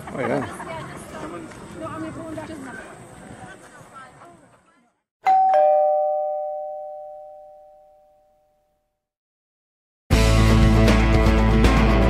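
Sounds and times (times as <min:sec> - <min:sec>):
two-note chime: 0:05.3 - 0:08.4.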